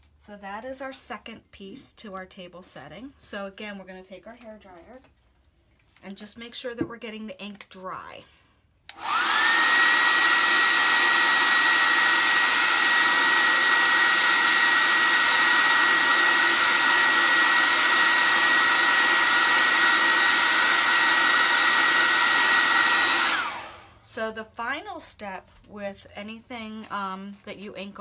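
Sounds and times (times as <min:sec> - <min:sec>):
hair dryer running: 0:08.9 - 0:24.1.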